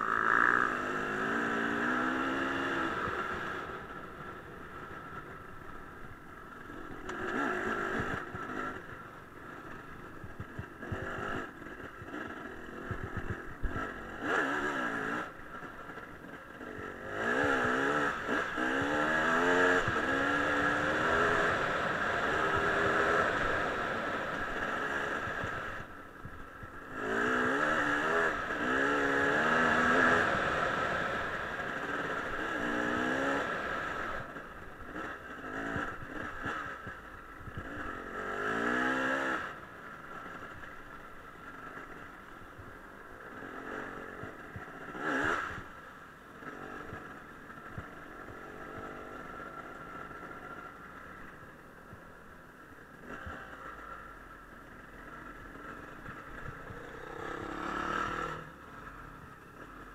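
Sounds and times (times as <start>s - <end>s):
dirt bike engine revving: 0.0s - 3.8s, 6.6s - 8.8s, 10.5s - 15.4s, 16.2s - 25.9s, 26.8s - 39.6s, 43.2s - 45.7s, 55.5s - 59.9s.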